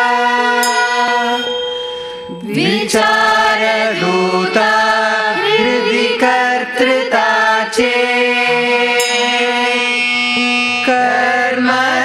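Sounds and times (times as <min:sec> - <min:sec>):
male and female voices chanting: 0:02.3 - 0:10.0.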